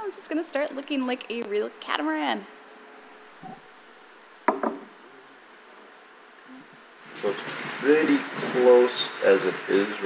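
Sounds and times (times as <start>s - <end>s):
tools knocking on fibreglass: 4.5s - 4.9s.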